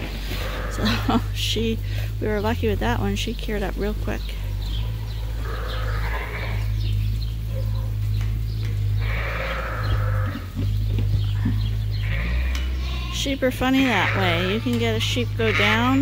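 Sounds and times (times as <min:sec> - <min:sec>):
lambs bleating: 0:00.0 - 0:01.4, 0:04.6 - 0:06.8, 0:08.9 - 0:16.0
steady low rumble: 0:00.0 - 0:16.0.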